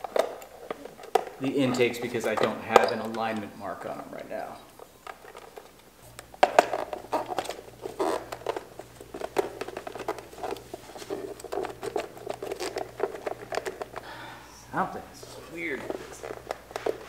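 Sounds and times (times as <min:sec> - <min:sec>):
rubber boot rubbing and clicking: 0:07.0 - 0:14.0.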